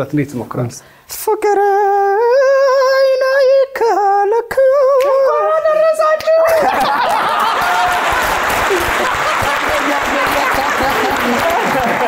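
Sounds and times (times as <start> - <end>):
people clapping: 6.2 - 12.0
people laughing: 6.4 - 12.0.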